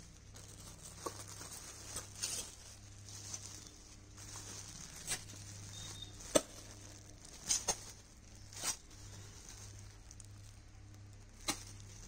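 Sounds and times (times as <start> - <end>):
low steady hum: 0.0 - 12.0
plastic packaging rustling: 0.0 - 12.0.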